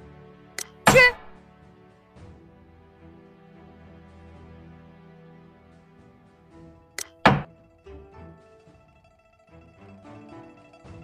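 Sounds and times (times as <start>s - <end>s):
soft background music: 0.0s - 11.0s
small click: 0.6s - 0.8s, 7.0s - 7.2s
loud wooden clack: 7.0s - 7.5s.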